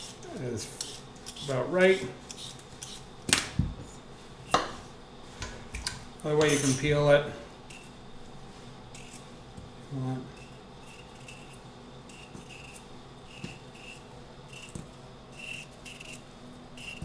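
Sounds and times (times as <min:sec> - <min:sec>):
knife scraping potato skin: 0:00.0 - 0:01.6, 0:02.3 - 0:03.1, 0:08.9 - 0:09.3, 0:10.3 - 0:17.0.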